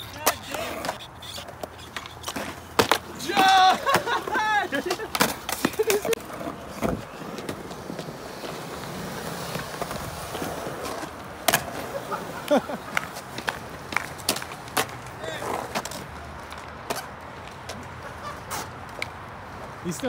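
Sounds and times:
skateboard clacks: 0.0s - 19.2s
skateboard wheels rolling on concrete: 0.0s - 20.0s.

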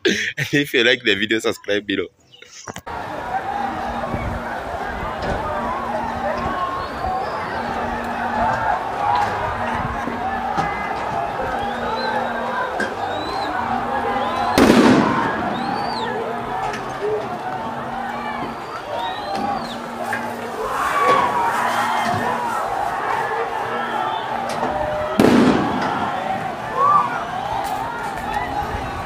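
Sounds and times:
crowd shouting: 2.9s - 29.0s
canister fired with sharp bang: 14.6s - 15.4s, 25.2s - 26.2s.

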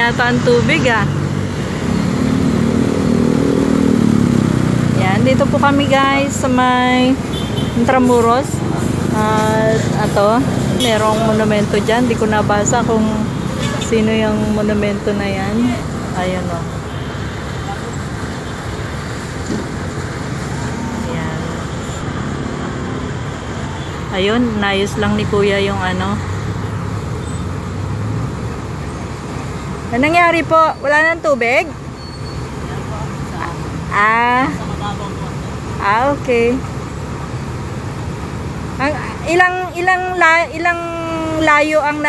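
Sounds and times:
vehicle engine accelerating: 0.0s - 6.4s, 8.1s - 16.3s
road traffic: 0.0s - 42.0s.

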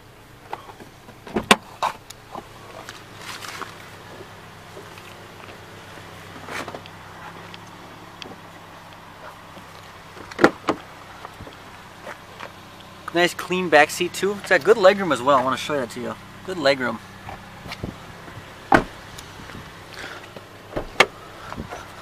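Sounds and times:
car door clunk: 0.5s - 2.9s, 10.1s - 11.5s, 17.3s - 19.7s, 20.3s - 21.9s
soft rustles and scuffs: 2.7s - 4.0s
car door latch knock: 18.7s - 19.0s, 20.7s - 21.1s.

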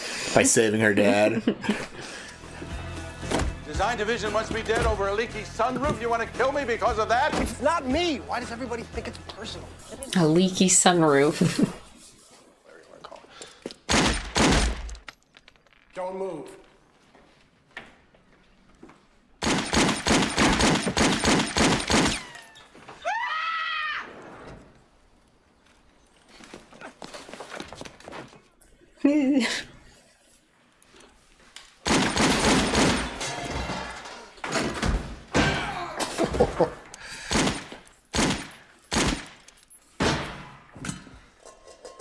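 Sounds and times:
gunshots with echo: 19.4s - 22.2s, 31.8s - 33.2s, 37.2s - 39.3s
rapid gunfire: 19.4s - 22.2s, 31.8s - 33.1s, 37.3s - 39.2s.

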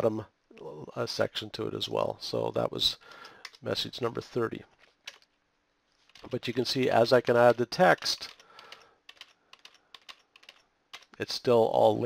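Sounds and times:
typing on computer keyboard: 7.9s - 11.2s.

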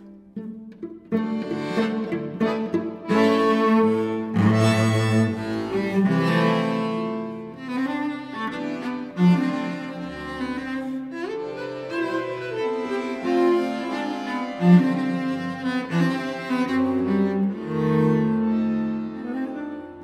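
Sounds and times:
cello and accordion folk tune: 0.0s - 20.0s.

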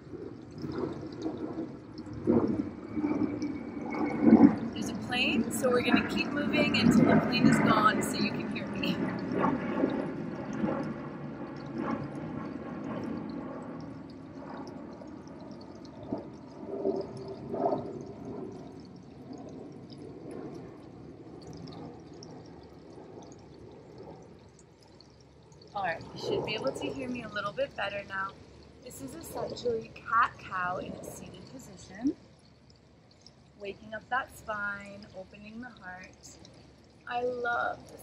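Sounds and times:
airplane droning overhead: 0.0s - 38.0s.

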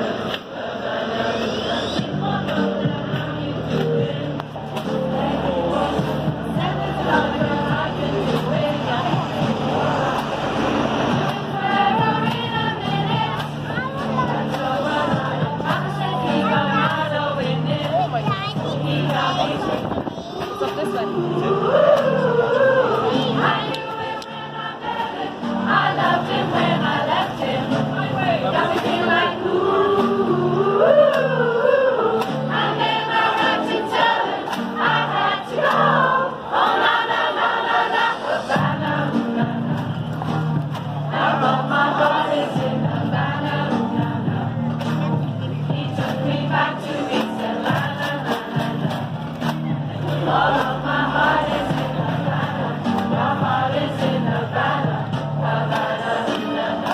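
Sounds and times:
women's choir singing: 0.0s - 56.9s.

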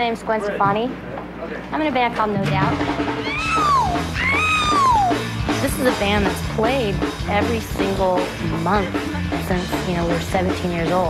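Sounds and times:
steady bass: 2.4s - 11.0s
live rock band music: 2.6s - 11.0s.

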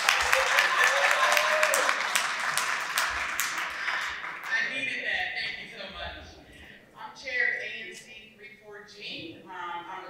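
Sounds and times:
crowd applauding: 0.0s - 4.6s.

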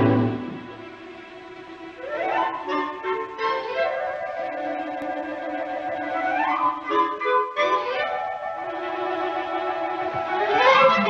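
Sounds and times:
violins and woodwinds playing: 0.0s - 11.0s.

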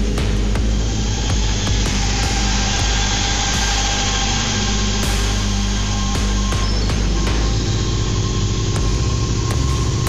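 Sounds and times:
electronic noise wash: 0.0s - 10.0s
low synthesizer drone: 0.0s - 10.0s.

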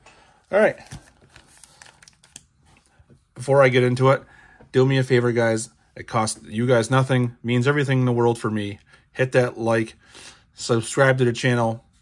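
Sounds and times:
wax paper packs crinkling: 0.4s - 2.6s.

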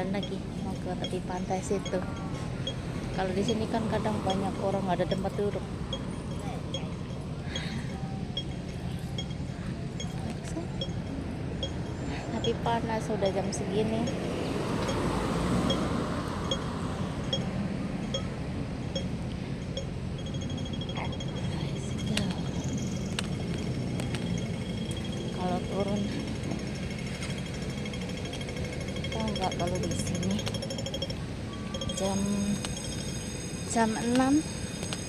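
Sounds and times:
crossing signal ticking: 0.0s - 35.0s
street traffic noise: 0.0s - 35.0s.

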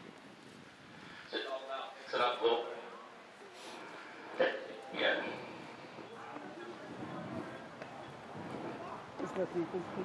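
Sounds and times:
faint voices murmuring: 0.0s - 10.0s.

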